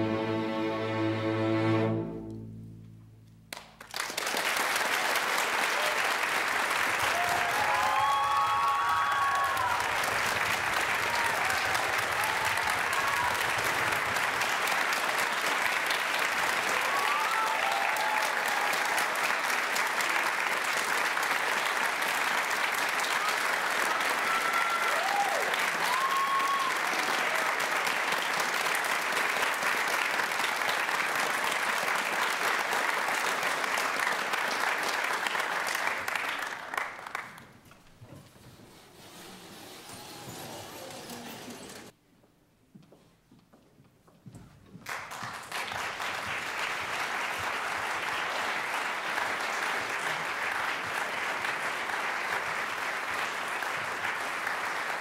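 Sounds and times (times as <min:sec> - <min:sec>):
audience applauding: 0:03.5 - 0:37.9, 0:44.8 - 0:55.0
cheers and whoops: 0:07.0 - 0:10.2, 0:10.8 - 0:13.8, 0:16.6 - 0:19.2, 0:23.0 - 0:27.7.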